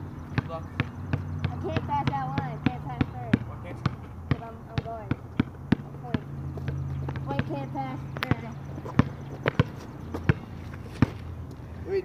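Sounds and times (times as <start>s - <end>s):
basketball bouncing on asphalt: 0.0s - 11.5s.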